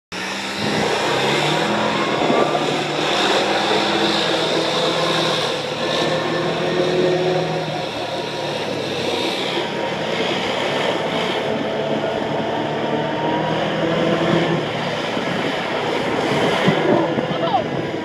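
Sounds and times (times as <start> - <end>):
engine running hard: 0.1 - 18.0.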